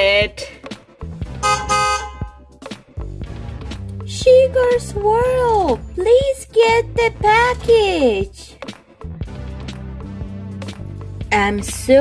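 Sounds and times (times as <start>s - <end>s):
background music low notes: 0.0s - 12.0s
vehicle horn honks: 1.4s - 2.4s.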